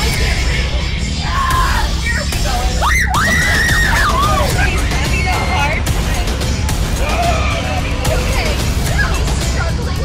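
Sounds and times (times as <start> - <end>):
loud background music: 0.0 - 10.0
woman screaming: 2.8 - 4.6.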